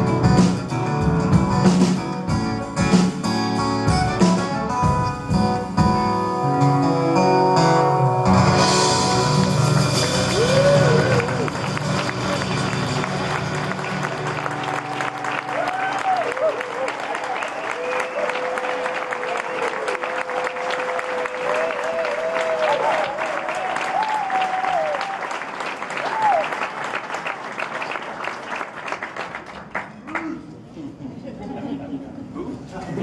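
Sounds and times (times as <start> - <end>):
band playing: 0.0 - 17.0
audience applauding and cheering: 8.4 - 30.3
whoops and shouts: 10.2 - 11.5, 14.8 - 25.2, 26.0 - 26.5.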